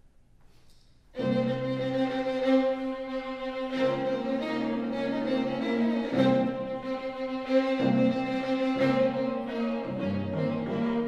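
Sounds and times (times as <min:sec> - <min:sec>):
clarinet and string quartet chord: 0:01.2 - 0:11.0.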